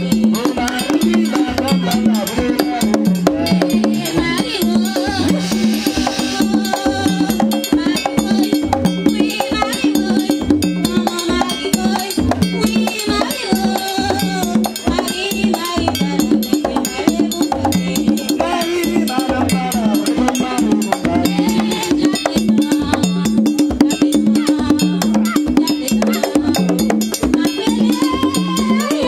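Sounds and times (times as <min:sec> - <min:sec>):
drums beating steady rhythm: 0:00.0 - 0:29.0
voices singing: 0:00.0 - 0:29.0.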